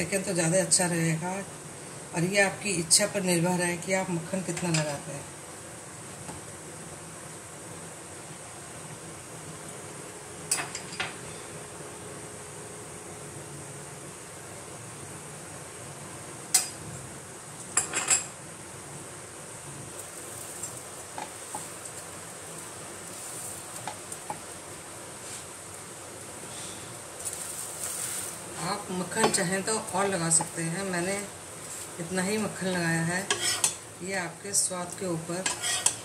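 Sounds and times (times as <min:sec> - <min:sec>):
butter sizzling in a pan: 0:19.8 - 0:36.0.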